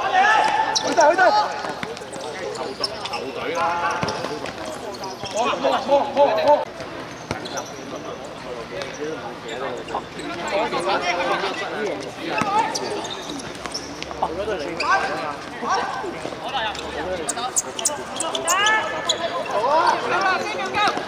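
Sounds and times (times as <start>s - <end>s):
players shouting: 0.0s - 2.1s.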